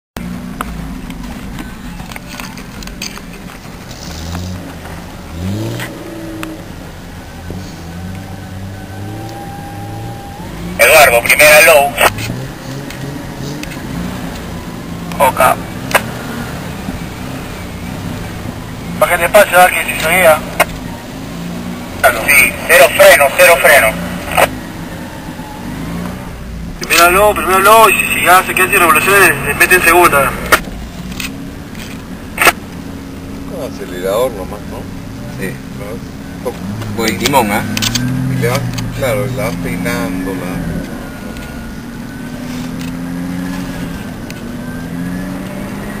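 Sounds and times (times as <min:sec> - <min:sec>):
off-road vehicle engine running: 0:00.2 - 0:46.0.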